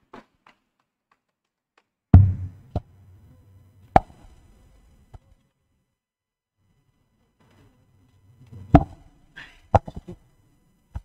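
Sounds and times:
faint low hum: 2.1 - 11.0
sharp knock: 2.2 - 2.8.

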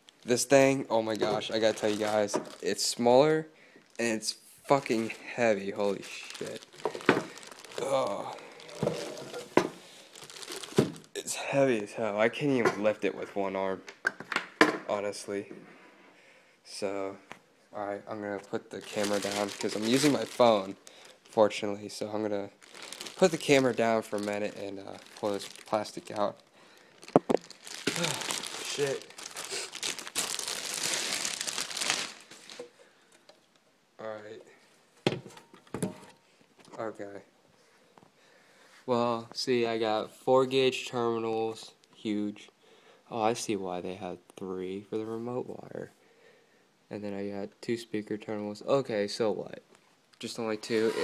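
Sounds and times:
plastic packaging crinkling: 0.0 - 2.9, 4.8 - 11.2, 18.7 - 32.8.

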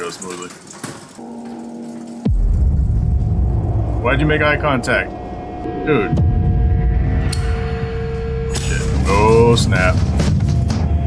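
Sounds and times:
synth tone diving in pitch: 1.2 - 9.4
deep bass rumble: 1.2 - 11.0.

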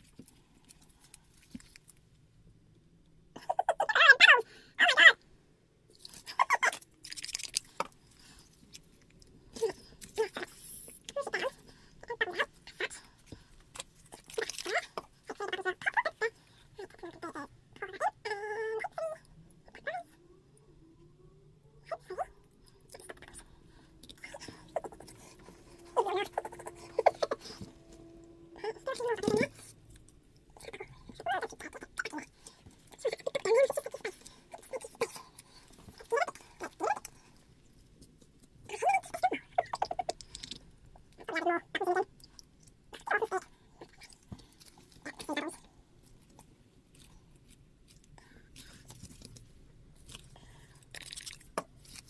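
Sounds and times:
small clicks and rustles: 0.0 - 2.3, 39.8 - 41.2, 42.0 - 52.0
faint steady hum: 0.0 - 52.0.

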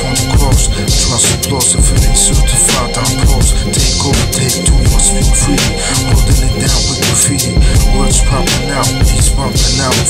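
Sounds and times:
rapping over a hip hop beat: 0.0 - 10.0.

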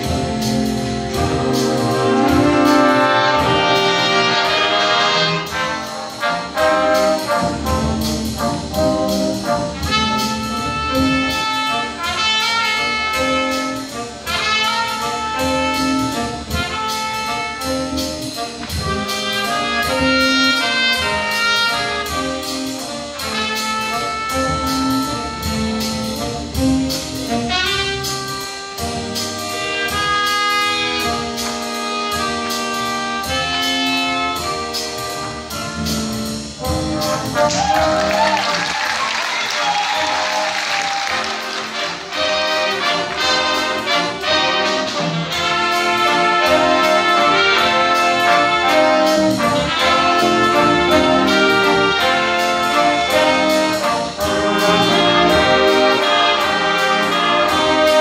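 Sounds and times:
jazz band playing: 0.0 - 58.0.

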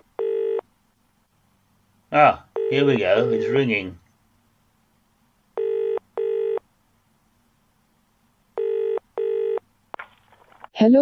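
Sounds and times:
telephone double ringing tone: 0.2 - 0.6, 5.6 - 6.6, 8.6 - 9.6.

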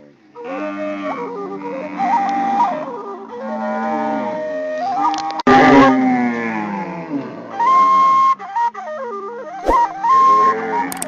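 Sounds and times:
flute melody: 7.8 - 11.0.

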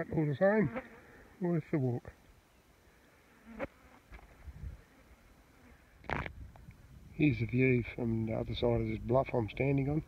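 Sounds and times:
flies buzzing: 0.1 - 1.4, 2.5 - 6.6.

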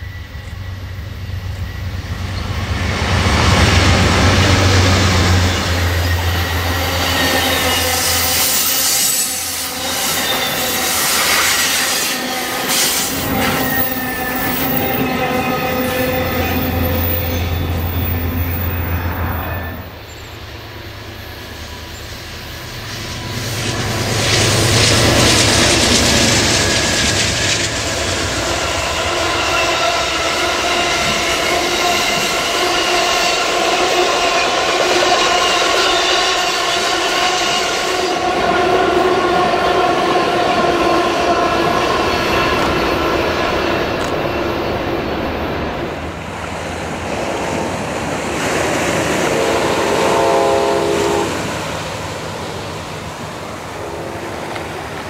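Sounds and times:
passenger train rumbling past: 0.0 - 55.0
multi-note train horn: 4.0 - 20.0, 28.4 - 43.3, 48.8 - 52.6, 53.4 - 55.0.

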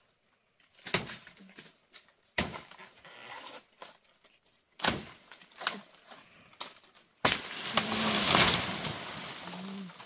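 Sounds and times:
dry leaves rustling: 7.0 - 10.0.

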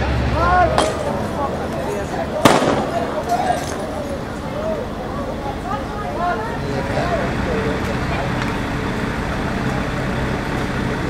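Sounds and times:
crowd voices: 0.0 - 11.0
truck engine humming: 0.0 - 11.0.

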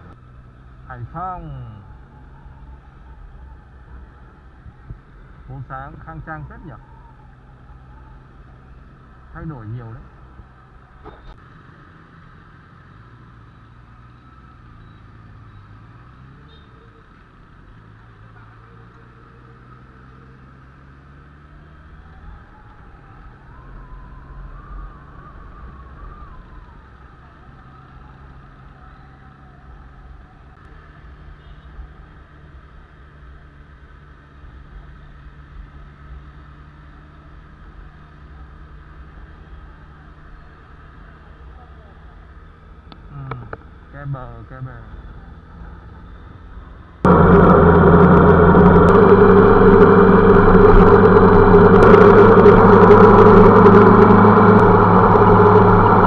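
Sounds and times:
wind and road noise: 0.0 - 56.0
motorcycle engine running: 47.1 - 56.0.

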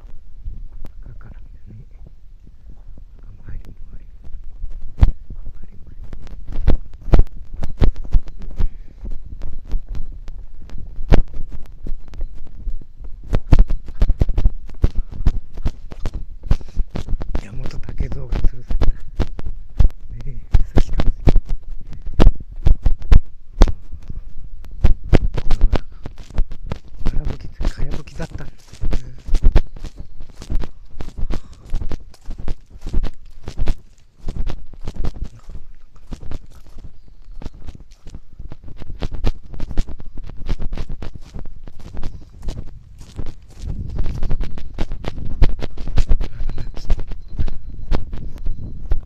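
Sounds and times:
low rumble on microphone: 0.0 - 49.0
footsteps crunching on gravel: 2.8 - 20.0, 24.9 - 48.6.

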